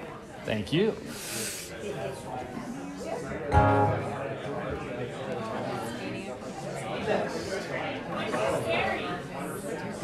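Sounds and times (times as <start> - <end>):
room chatter: 0.0 - 10.0
acoustic guitar chord strummed: 3.5 - 4.4.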